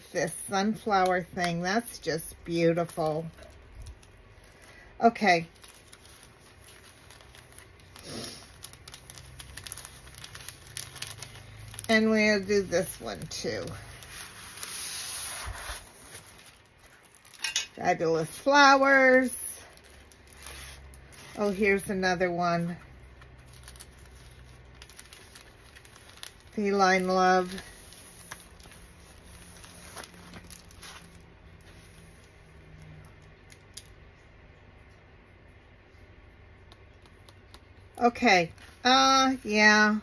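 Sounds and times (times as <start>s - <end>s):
plastic sleeves crinkling: 0.0s - 34.0s, 36.7s - 40.0s
low room hum: 0.0s - 40.0s.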